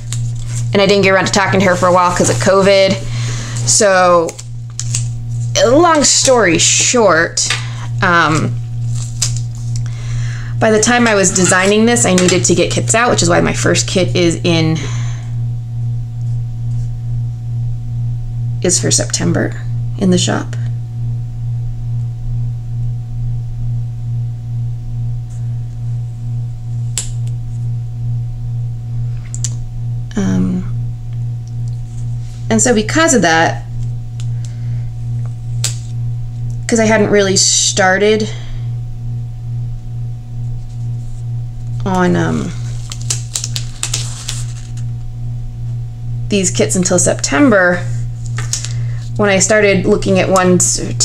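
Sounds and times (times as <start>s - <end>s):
paper sticker crackling and tapping: 0.0s - 0.6s, 4.2s - 5.1s, 8.3s - 9.8s, 10.8s - 12.5s, 42.7s - 44.8s
steady low hum: 0.0s - 51.0s.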